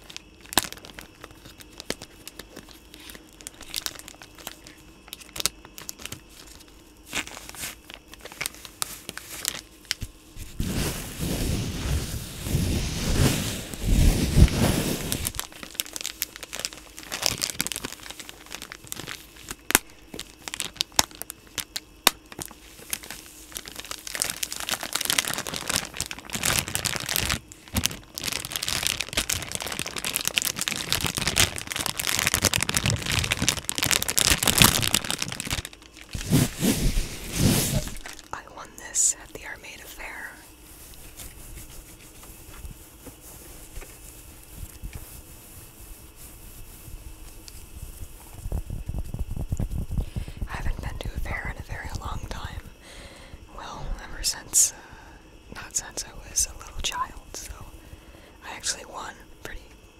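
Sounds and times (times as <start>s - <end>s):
plastic pack crinkling: 0.0s - 11.3s, 12.0s - 38.4s
wet wipe crumpled and rubbed: 0.0s - 38.4s, 40.1s - 52.6s.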